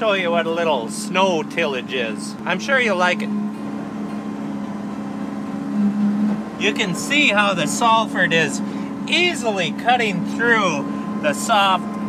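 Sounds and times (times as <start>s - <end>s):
tractor engine droning: 0.0s - 12.0s.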